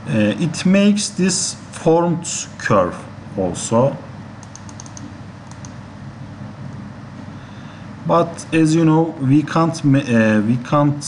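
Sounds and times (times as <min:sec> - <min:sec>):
steady hiss and low hum: 0:00.0 - 0:11.0
computer clicks: 0:04.4 - 0:05.8.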